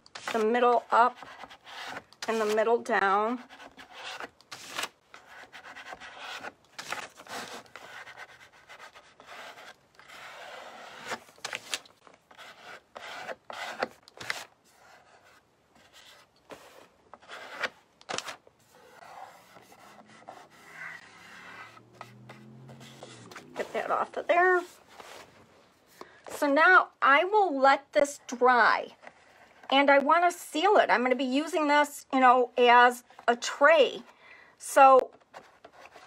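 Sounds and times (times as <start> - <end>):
plastic card scraping over paper: 0.1 - 26.1.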